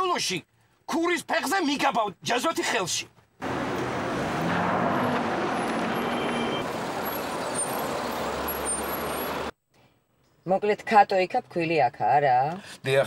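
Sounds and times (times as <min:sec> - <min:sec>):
car engine rumbling: 0:03.4 - 0:09.5.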